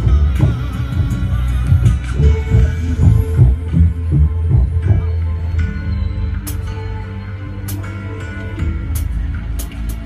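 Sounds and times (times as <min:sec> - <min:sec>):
music with pulsing bass beat: 0:00.0 - 0:10.0.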